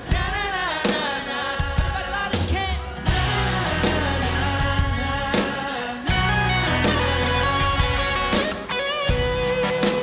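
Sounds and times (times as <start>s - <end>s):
person singing: 0.0s - 8.7s.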